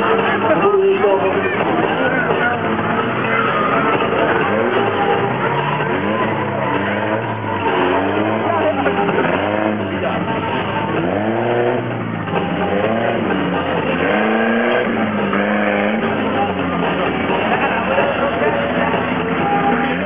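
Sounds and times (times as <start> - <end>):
racing car engines revving: 0.0 - 20.0.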